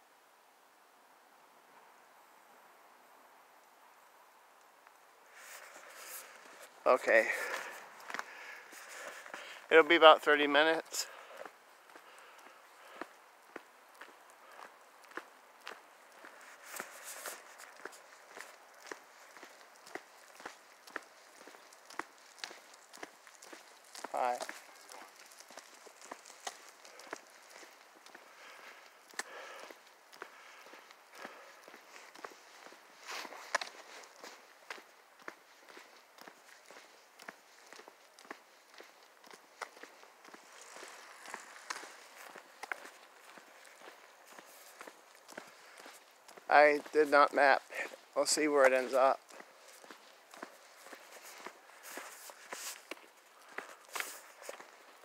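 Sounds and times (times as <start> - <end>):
footsteps on pavement: 4.8 - 55.0.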